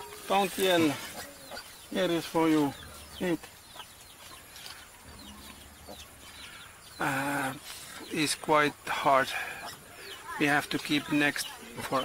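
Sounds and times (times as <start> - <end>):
chicken clucking: 0.0 - 7.0.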